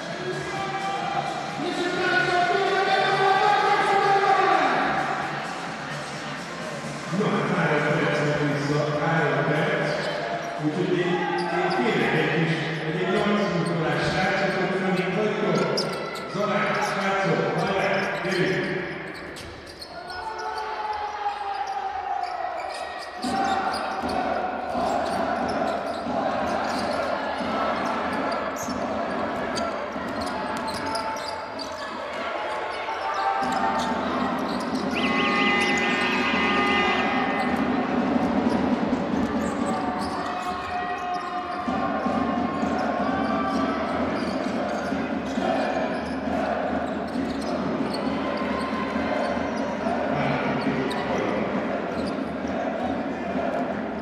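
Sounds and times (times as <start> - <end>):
voices in indoor arena: 0.0 - 54.0.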